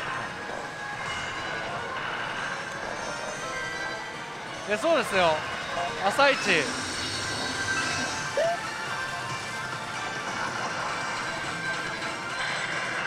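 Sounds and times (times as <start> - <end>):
din of gaming hall: 0.0 - 13.0
electronic slot machine music: 0.0 - 13.0.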